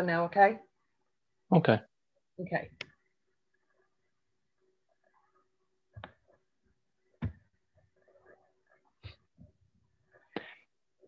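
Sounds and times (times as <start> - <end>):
faint small noises: 0.6 - 11.0.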